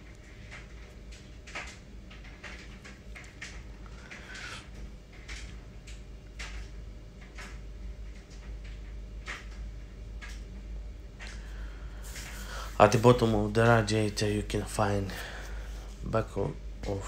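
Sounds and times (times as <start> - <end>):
steady low hum: 0.0 - 17.0
knocks and rustles of handling: 11.1 - 13.9.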